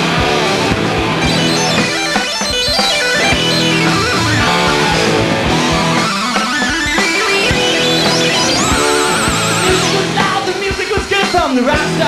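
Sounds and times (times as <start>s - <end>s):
distorted electric guitar: 0.0s - 12.0s
steady drum beat: 0.0s - 12.0s.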